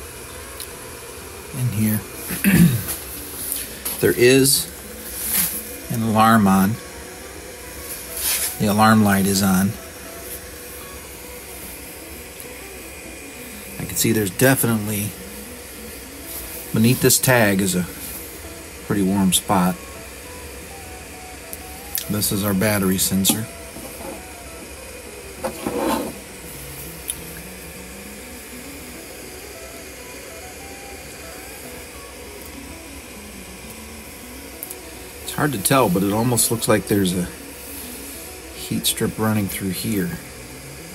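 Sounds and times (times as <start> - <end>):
person clearing throat: 2.3 - 3.0.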